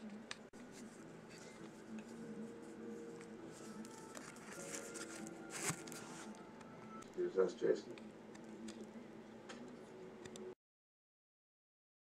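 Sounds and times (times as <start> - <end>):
cable rustling: 0.0 - 7.2
faint background music: 0.0 - 10.6.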